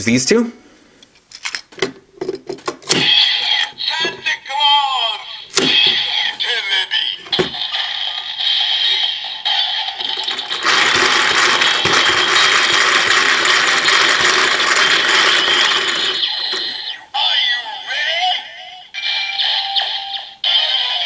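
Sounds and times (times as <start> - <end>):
toy electronic tone: 3.0 - 21.0
plastic gears ratcheting: 8.4 - 16.8.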